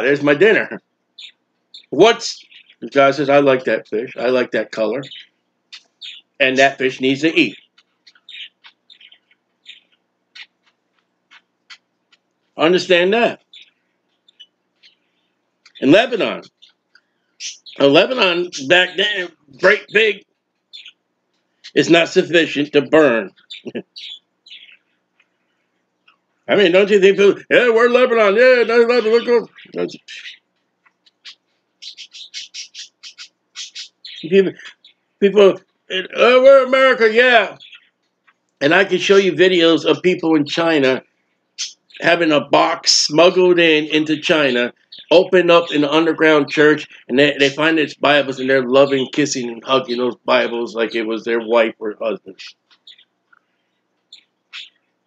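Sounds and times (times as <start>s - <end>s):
bird chirping: 0.0s - 55.0s.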